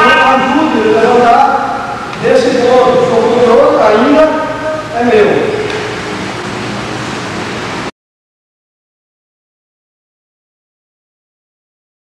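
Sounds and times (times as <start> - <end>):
man's voice: 0.0 - 5.7
steady background hiss: 0.0 - 7.9.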